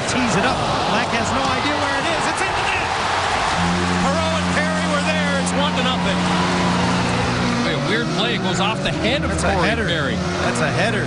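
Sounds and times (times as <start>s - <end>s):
crowd cheering: 0.0s - 9.4s
goal horn blaring: 3.5s - 10.9s.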